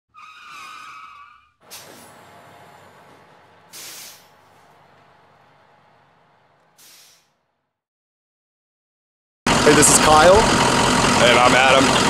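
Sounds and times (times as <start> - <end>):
wavering tyre squeal: 0.1 - 5.3
short sharp hiss: 1.7 - 2.2, 3.7 - 4.4, 6.8 - 7.3.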